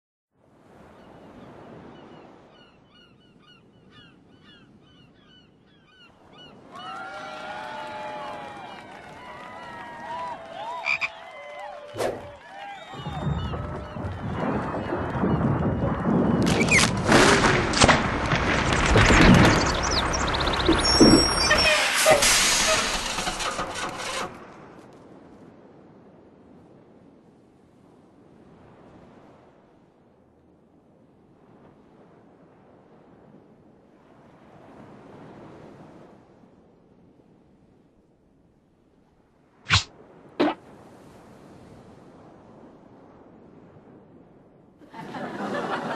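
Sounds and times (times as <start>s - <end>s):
calls gliding in pitch: 10.7s - 11.2s
sliding whistles: 19.2s - 24.3s.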